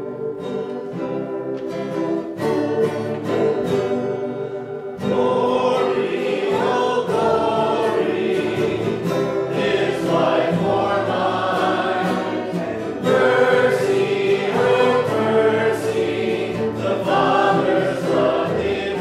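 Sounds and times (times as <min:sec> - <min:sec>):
strummed acoustic guitar: 0:00.0 - 0:19.0
group singing a hymn: 0:04.8 - 0:19.0.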